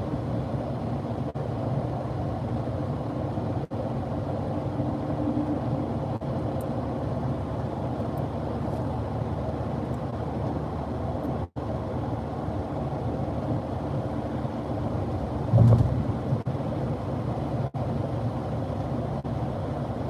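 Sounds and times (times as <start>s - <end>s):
car engine hum: 0.0s - 20.0s
road and tyre noise: 0.0s - 20.0s.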